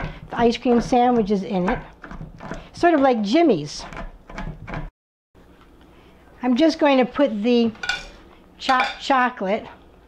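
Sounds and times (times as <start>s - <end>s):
knife chopping on plastic board: 0.0s - 3.2s.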